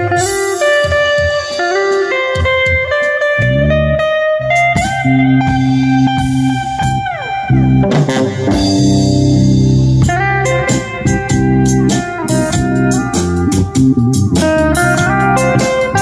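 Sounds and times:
electric guitar melody: 0:00.0 - 0:16.0
low bass notes: 0:02.5 - 0:16.0.

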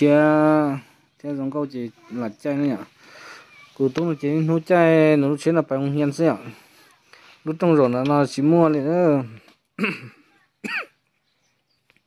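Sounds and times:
person speaking: 0:00.0 - 0:10.5.

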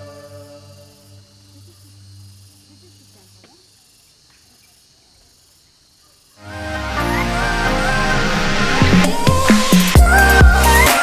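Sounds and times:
soft ambient music: 0:00.0 - 0:01.5
faint chirps: 0:00.0 - 0:06.4
cicadas droning: 0:00.0 - 0:11.0.

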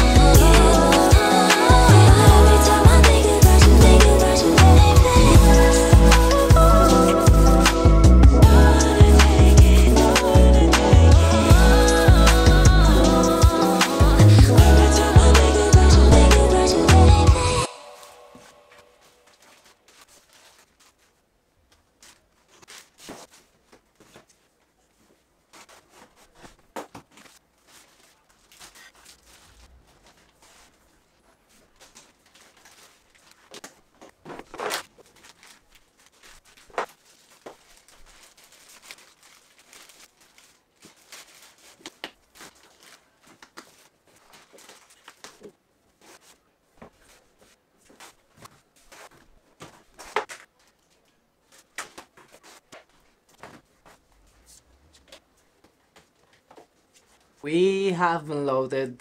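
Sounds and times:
plastic bags rustling: 0:17.8 - 0:57.4.

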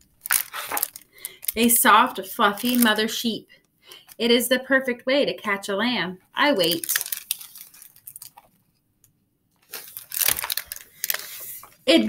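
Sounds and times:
book pages rustling: 0:00.2 - 0:01.1, 0:06.7 - 0:08.8, 0:09.5 - 0:11.9.

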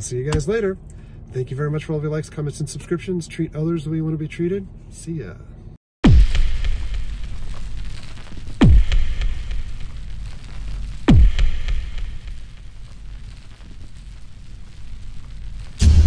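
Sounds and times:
impact hits with bass boom: 0:06.0 - 0:13.3, 0:15.5 - 0:16.0
deep low rumble: 0:06.1 - 0:16.0.

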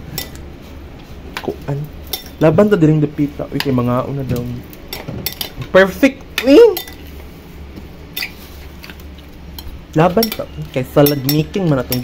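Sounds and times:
low steady hum: 0:00.0 - 0:12.0
metal spoon clinking on bowl: 0:06.4 - 0:07.0, 0:09.6 - 0:12.0.

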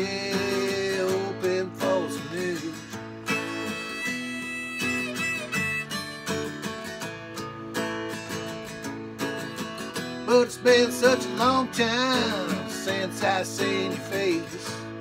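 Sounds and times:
acoustic guitar strumming: 0:00.0 - 0:15.0
harmonica holding notes: 0:03.1 - 0:06.9.

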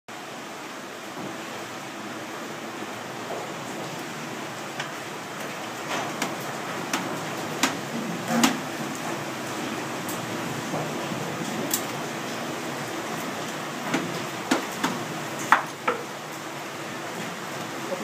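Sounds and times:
water rushing through watermill: 0:00.1 - 0:18.0.

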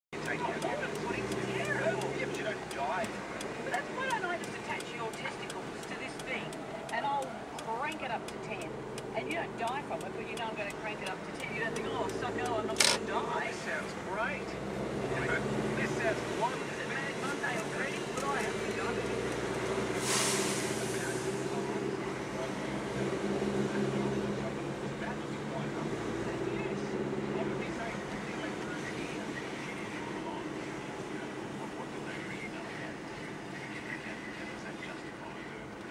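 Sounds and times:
engine and road hum: 0:00.1 - 0:35.9
fast even ticking: 0:00.2 - 0:13.1
voice on radio: 0:00.2 - 0:19.3, 0:23.7 - 0:35.9
short burst of hiss: 0:20.0 - 0:21.3.

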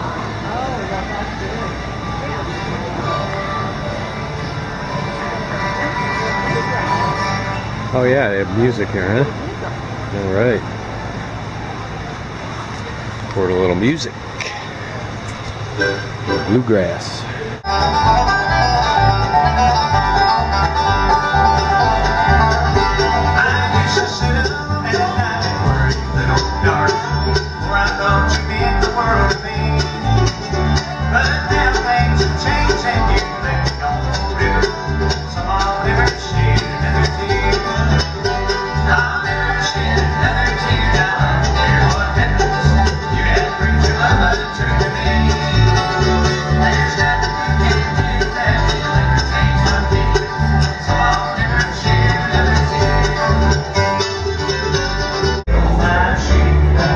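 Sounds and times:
banjo picking: 0:00.0 - 0:10.8, 0:15.4 - 0:56.9
plucked upright bass: 0:00.0 - 0:10.9, 0:14.3 - 0:16.7, 0:17.5 - 0:56.9
acoustic guitar picking: 0:00.0 - 0:56.9
mandolin picking: 0:00.0 - 0:56.9.

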